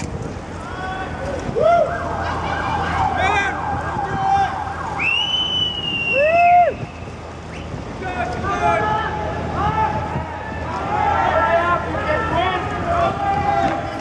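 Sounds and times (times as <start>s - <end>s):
street noise: 0.0s - 14.0s
riders whooping and yelling: 0.5s - 14.0s.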